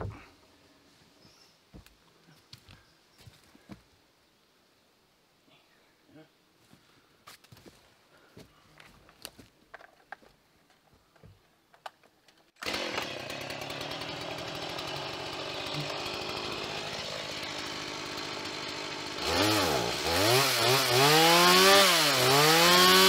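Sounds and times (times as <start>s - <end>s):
chainsaw running and revving: 12.6s - 23.0s.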